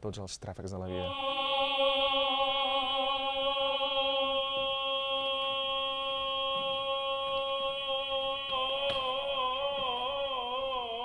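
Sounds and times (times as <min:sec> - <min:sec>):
tenor voices singing: 0:00.9 - 0:11.0.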